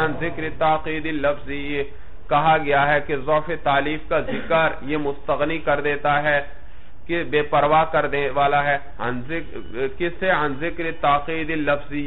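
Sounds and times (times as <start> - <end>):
man reciting in sing-song chant: 0.0 - 6.5, 7.1 - 12.0.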